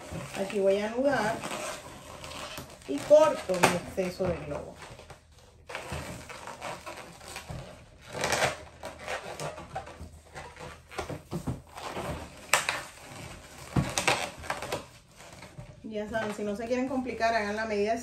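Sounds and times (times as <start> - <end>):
balloon squeaks: 0.0 - 17.5
balloon rubbing and rustling: 0.0 - 18.0.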